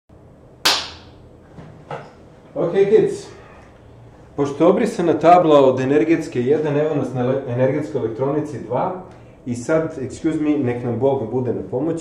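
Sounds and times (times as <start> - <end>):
sharp smack: 0.7 - 1.2.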